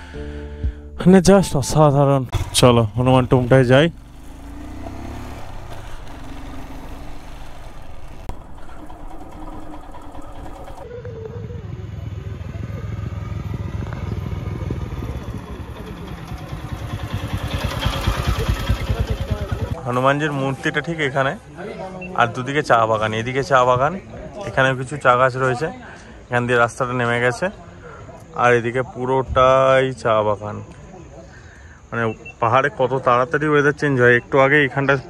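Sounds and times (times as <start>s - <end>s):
motorcycle approaching: 1.8s - 21.2s
motorcycle engine running: 2.2s - 20.0s.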